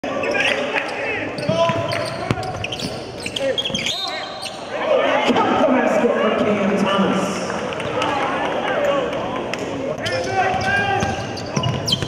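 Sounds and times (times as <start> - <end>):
sneakers squeaking: 0.1 - 4.8, 9.9 - 12.0
echoing voices: 3.4 - 11.9.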